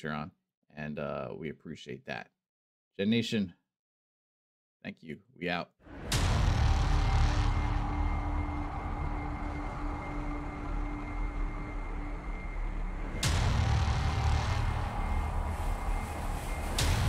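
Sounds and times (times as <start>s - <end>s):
whooshing hit: 5.9s - 17.0s
deep steady rumble: 6.1s - 17.0s.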